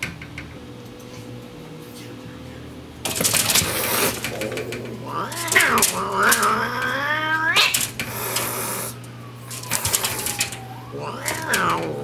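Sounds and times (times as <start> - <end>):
paws rattling screen mesh: 0.0 - 12.0
cat yowling: 0.9 - 12.0.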